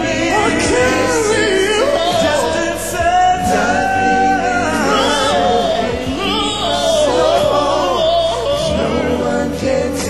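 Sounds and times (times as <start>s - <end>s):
male vocal group singing ballad: 0.0s - 10.0s.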